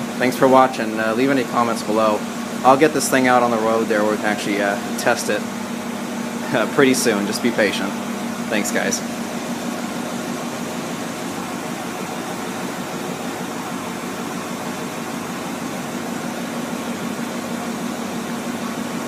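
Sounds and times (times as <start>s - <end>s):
mechanical hum: 0.0s - 19.0s.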